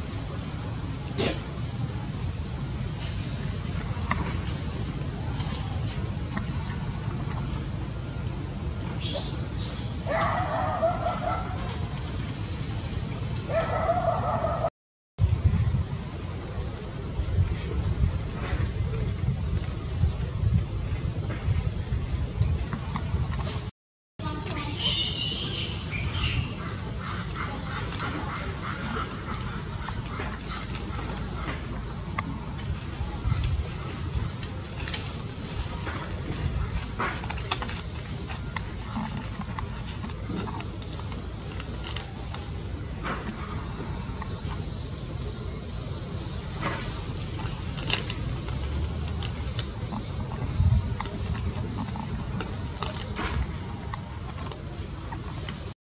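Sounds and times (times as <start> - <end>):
steady low rumble: 0.0 - 24.7, 25.5 - 55.8.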